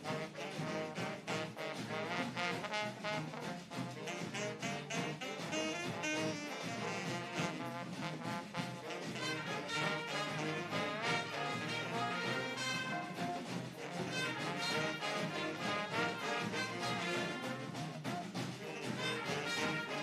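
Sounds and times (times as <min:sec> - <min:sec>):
big band playing jazz: 0:00.0 - 0:20.0
steady drum beat: 0:00.0 - 0:20.0.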